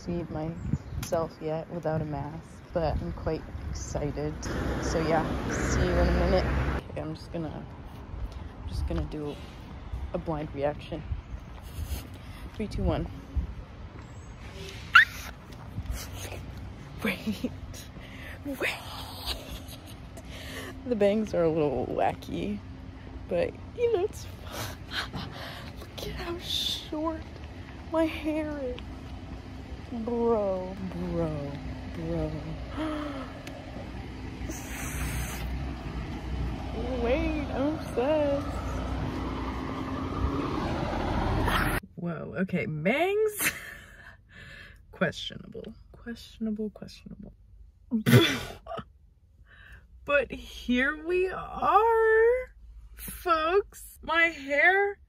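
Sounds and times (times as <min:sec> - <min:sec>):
wind buffeting microphone: 0:00.0 - 0:06.8
street traffic: 0:00.0 - 0:55.0
woman squealing: 0:14.9 - 0:15.3.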